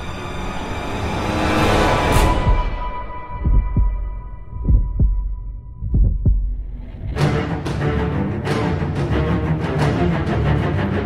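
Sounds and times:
heartbeat thumps: 2.3 - 7.8.

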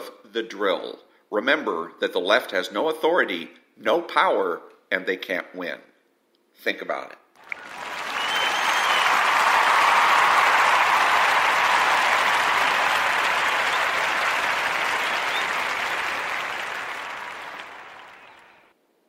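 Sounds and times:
crowd applause: 7.4 - 18.7.

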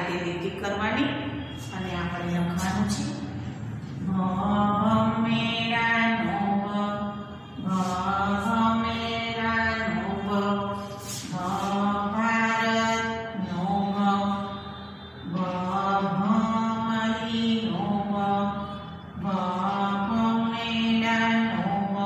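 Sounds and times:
person singing devotional chant: 1.8 - 22.0.

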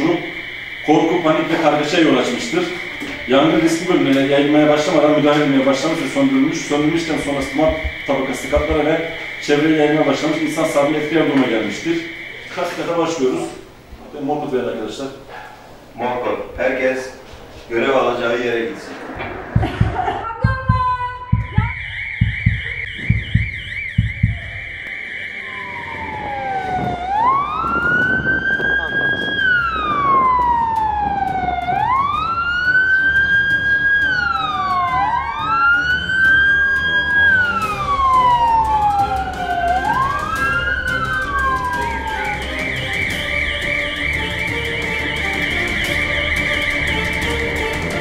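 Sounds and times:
fire engine siren: 0.0 - 13.8, 20.8 - 48.0
quick footfalls: 21.4 - 24.8.

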